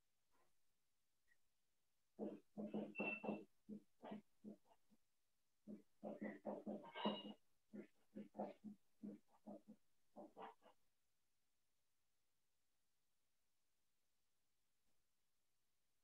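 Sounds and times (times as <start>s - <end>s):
marker squeaking on whiteboard: 2.2s - 4.9s, 5.6s - 10.8s.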